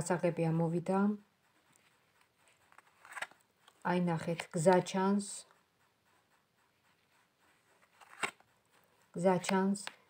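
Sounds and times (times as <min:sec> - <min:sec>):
cards rustling and clicking: 0:02.2 - 0:04.8, 0:07.7 - 0:08.5.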